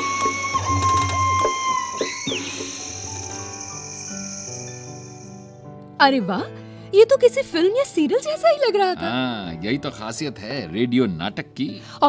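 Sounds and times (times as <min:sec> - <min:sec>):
cricket chirring: 0:00.0 - 0:05.8
soft background music: 0:00.0 - 0:12.0.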